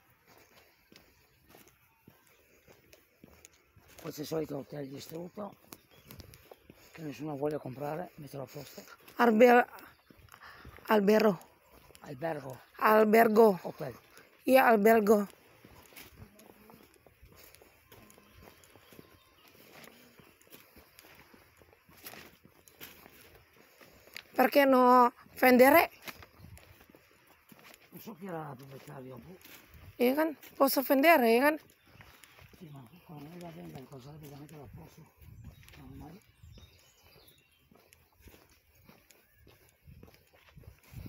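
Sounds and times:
faint footsteps: 0:00.0 - 0:41.0.

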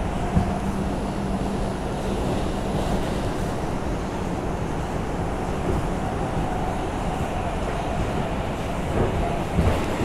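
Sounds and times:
subway wheels rumbling on rail: 0:00.0 - 0:10.0.

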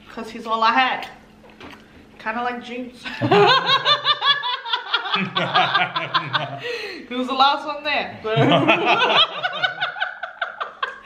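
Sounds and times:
man and woman laughing: 0:03.1 - 0:06.9, 0:08.3 - 0:11.0.

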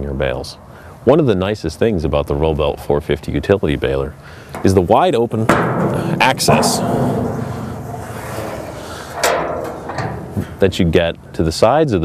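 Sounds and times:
metal door swinging open: 0:05.5 - 0:10.6.

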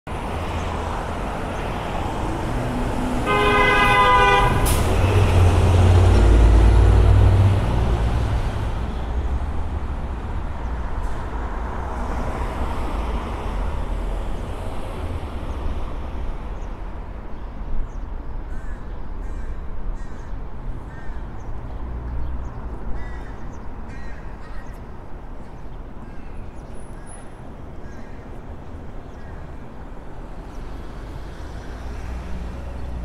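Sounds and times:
street traffic noise: 0:00.1 - 0:33.0
vehicle horn: 0:03.2 - 0:05.2.

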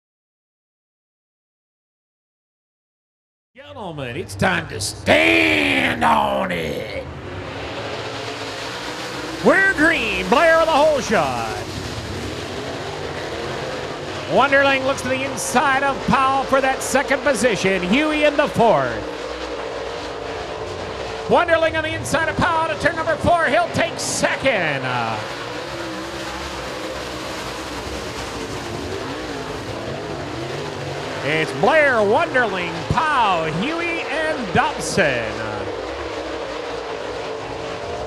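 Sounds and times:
race car engines droning: 0:03.6 - 0:38.0.

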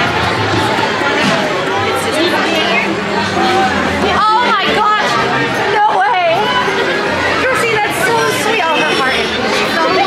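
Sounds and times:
crowd chatter: 0:00.0 - 0:10.0
people talking: 0:00.0 - 0:10.0.

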